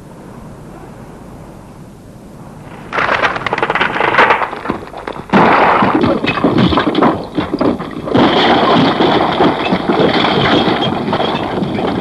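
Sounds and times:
small crackles: 2.7s - 12.0s.

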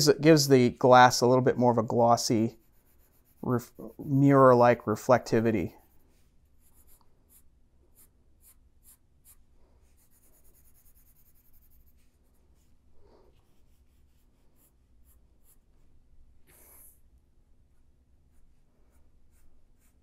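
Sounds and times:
pencil scratching on paper: 1.6s - 15.8s, 16.5s - 17.0s, 18.3s - 20.0s.

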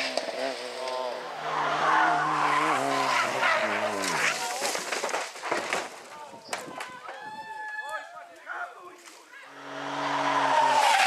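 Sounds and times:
rally car engine at high revs: 0.0s - 4.2s, 9.6s - 11.0s
spectators shouting: 9.4s - 11.0s.

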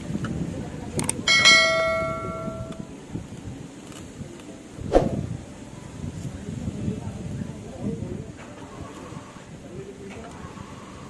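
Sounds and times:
bell-like chime: 1.3s - 2.8s.

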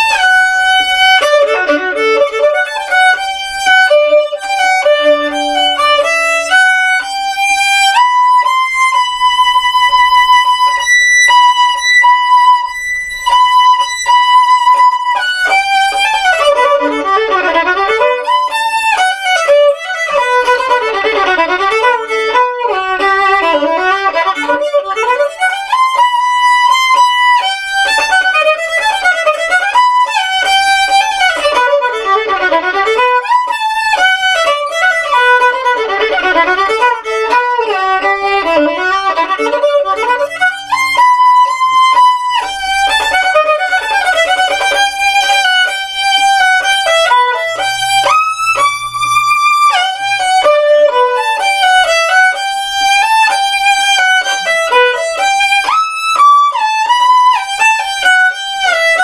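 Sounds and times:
solo violin: 0.0s - 59.0s.

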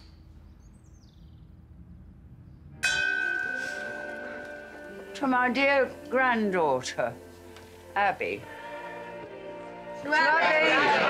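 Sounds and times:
bell struck and ringing: 2.8s - 5.8s.

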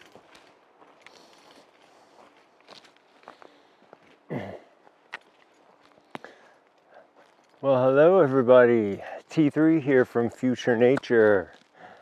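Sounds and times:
footsteps crunching on dirt trail: 0.0s - 12.0s.

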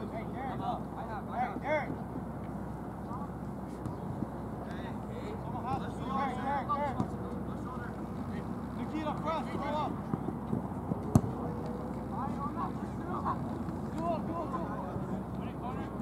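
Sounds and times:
outdoor background hum: 0.0s - 16.0s.

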